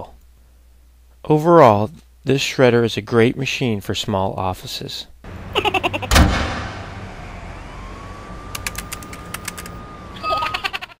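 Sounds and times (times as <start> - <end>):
cartoonish laughing chattering voice: 5.5 - 6.1, 10.2 - 11.0
thump: 6.1 - 7.2
quick sharp clicks: 8.5 - 9.8.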